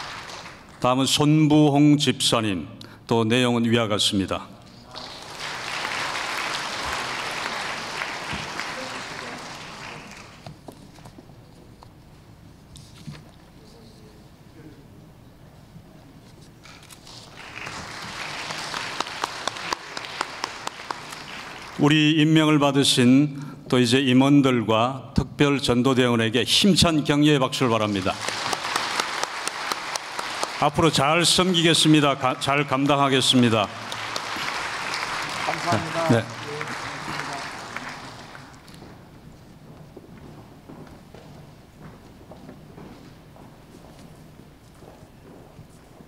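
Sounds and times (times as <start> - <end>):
congregation applauding: 0.0 - 0.9, 4.9 - 10.6, 17.0 - 22.6, 27.6 - 39.0.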